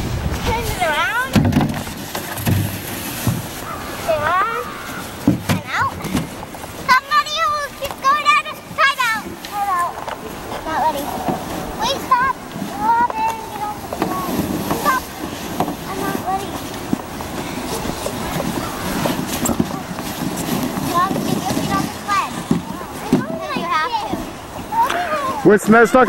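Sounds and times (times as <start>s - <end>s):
steady rushing noise: 0.0s - 26.0s
children calling and squealing: 3.5s - 26.0s.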